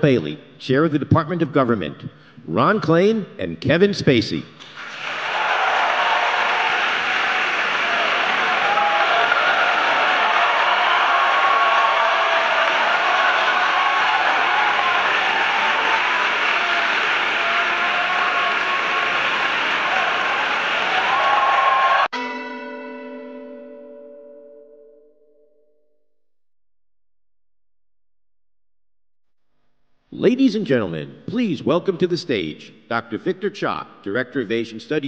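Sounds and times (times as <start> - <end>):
audience applauding: 4.6 - 22.1
bell-like chime: 22.2 - 26.0.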